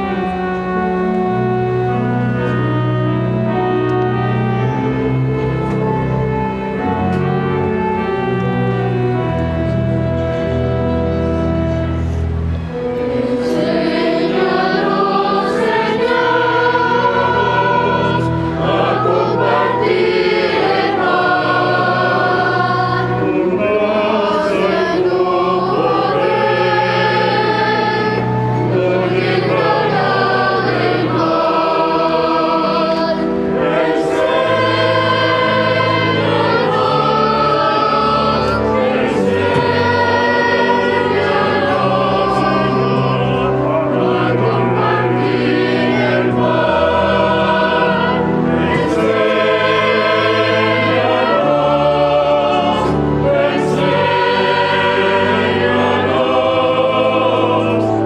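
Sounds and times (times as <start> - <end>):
choir singing a hymn: 0.0 - 58.0
instrumental accompaniment: 0.0 - 58.0.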